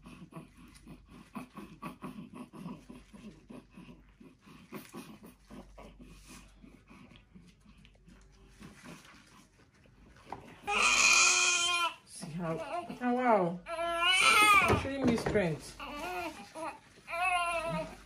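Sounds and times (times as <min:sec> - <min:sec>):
baby grunting and whimpering: 0:00.0 - 0:06.0, 0:13.7 - 0:14.8
baby crying loudly: 0:10.7 - 0:12.0, 0:13.7 - 0:14.8.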